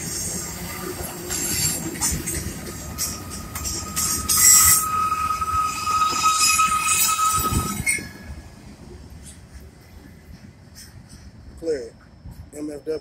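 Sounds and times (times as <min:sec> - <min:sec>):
steel wheels squealing on rail: 0:00.0 - 0:12.6
freight train rumble: 0:00.0 - 0:13.0.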